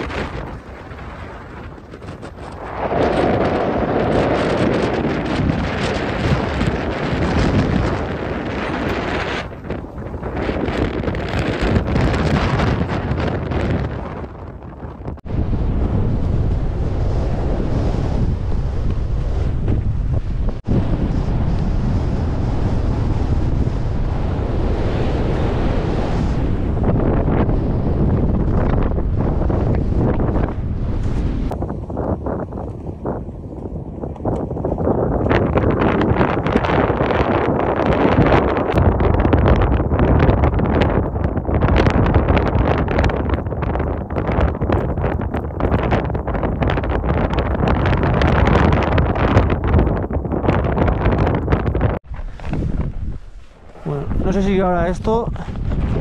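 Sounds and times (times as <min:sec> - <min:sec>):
strong wind buffeting microphone: 0:00.0 - 0:56.0.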